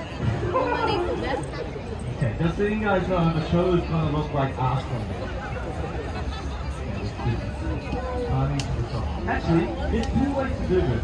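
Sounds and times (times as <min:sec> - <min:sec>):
crowd calling out and chattering: 0:00.0 - 0:11.0.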